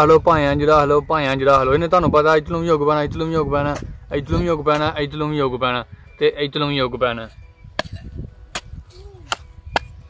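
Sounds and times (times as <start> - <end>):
hand hoe chopping stony soil: 7.8 - 10.0.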